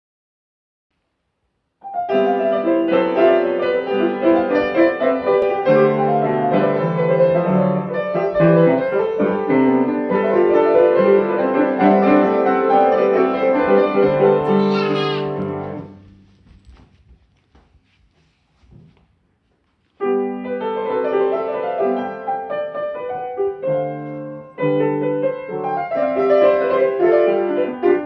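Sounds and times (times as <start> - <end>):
two pianos playing: 1.8 - 16.0, 20.0 - 28.0.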